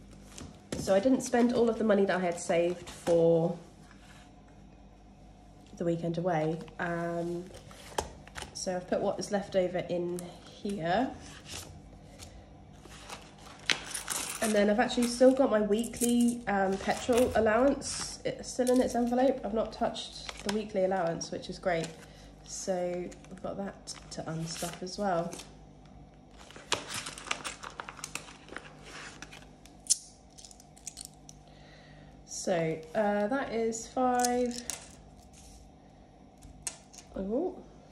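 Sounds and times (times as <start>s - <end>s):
plastic pouch crinkling: 12.8s - 18.0s, 20.0s - 20.7s, 26.3s - 31.4s
banknotes rustling: 12.8s - 21.0s, 26.3s - 29.6s
plastic envelope being handled: 12.8s - 25.6s, 26.3s - 29.8s.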